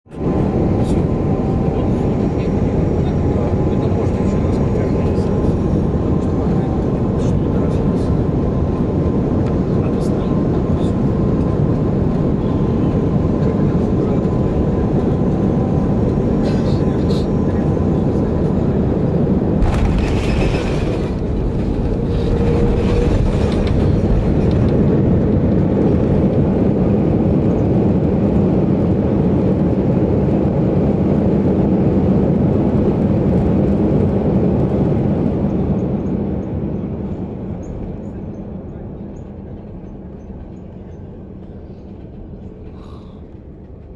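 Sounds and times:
engine and airflow rumble: 0:00.0 - 0:43.9.

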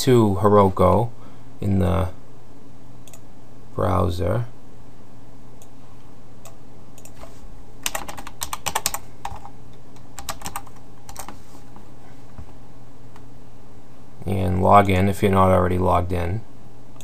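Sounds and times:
steady low hum: 0:00.0 - 0:17.0
keyboard keystrokes: 0:07.8 - 0:11.3.

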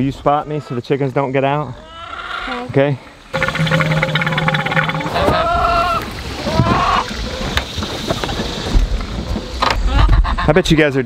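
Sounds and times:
rising and falling calls: 0:03.4 - 0:07.0.

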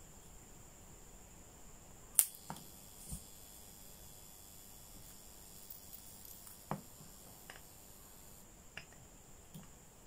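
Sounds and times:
alligator clip snapping: 0:02.2 - 0:03.2.

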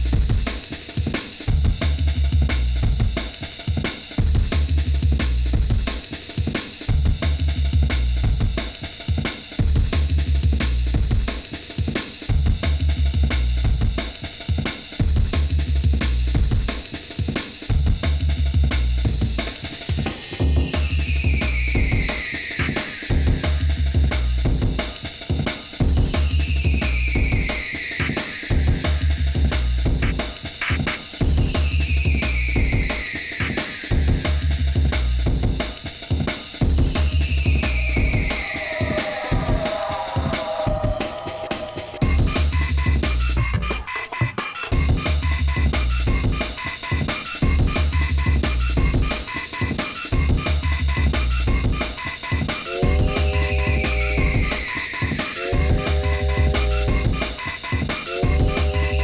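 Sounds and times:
fast breakbeat drums: 0:00.0 - 0:59.0
heavy sub-bass line: 0:01.5 - 0:03.2, 0:04.2 - 0:05.9, 0:06.9 - 0:08.6, 0:17.7 - 0:19.5, 0:28.5 - 0:30.4, 0:31.2 - 0:32.8, 0:33.9 - 0:35.7, 0:36.6 - 0:43.6, 0:47.4 - 0:49.1, 0:55.6 - 0:57.3, 0:58.2 - 0:59.0
falling high-pitched sweeps: 0:21.4 - 0:23.6, 0:26.2 - 0:29.1, 0:37.0 - 0:43.1.

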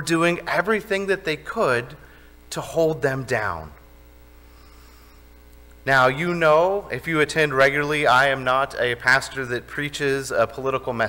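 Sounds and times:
man speaking: 0:00.0 - 0:03.8, 0:05.8 - 0:11.0
electrical mains hum: 0:00.0 - 0:11.0.

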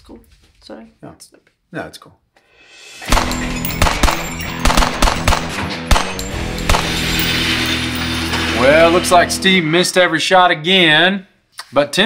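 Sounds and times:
pistol shots: 0:03.1 - 0:07.3.

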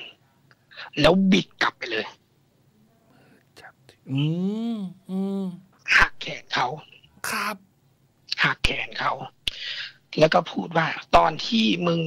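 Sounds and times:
breathy whisper: 0:03.0 - 0:05.7
drawn-out wordless vocal sound: 0:04.0 - 0:05.7.

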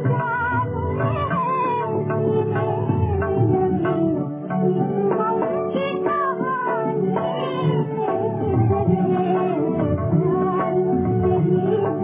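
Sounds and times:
tabla strokes: 0:00.0 - 0:12.0.

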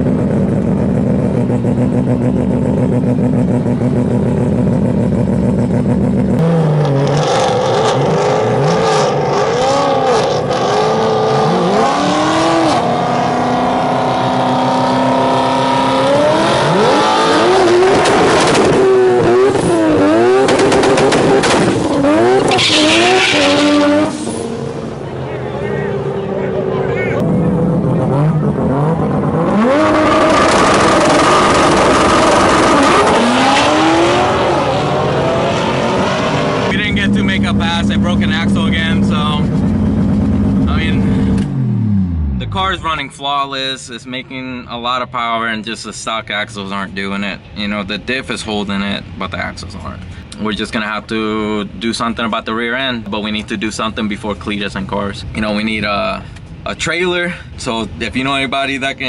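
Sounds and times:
rotary engine revving: 0:00.0 - 0:42.8.

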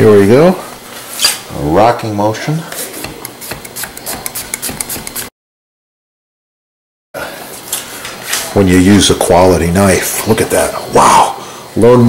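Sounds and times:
knife tapping chopping board: 0:03.0 - 0:05.3.

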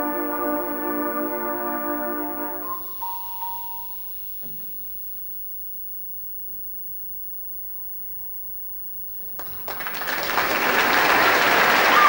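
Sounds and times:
concert band chord: 0:00.0 - 0:04.8
faint knock: 0:04.4 - 0:04.9.

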